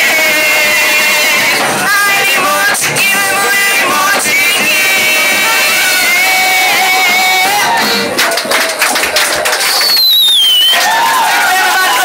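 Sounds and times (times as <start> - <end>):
live band with violin: 6.0 - 8.2.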